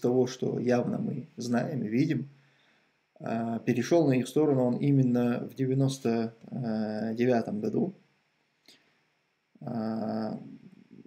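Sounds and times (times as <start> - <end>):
man humming hesitantly: 9.6 - 10.6.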